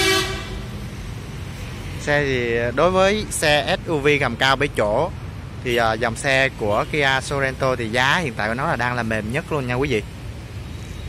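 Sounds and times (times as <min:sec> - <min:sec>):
short horn toot: 0:00.0 - 0:00.6.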